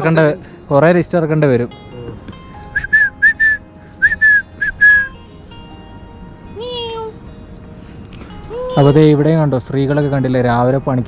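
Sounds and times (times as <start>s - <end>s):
person whistling: 2.7s - 5.2s.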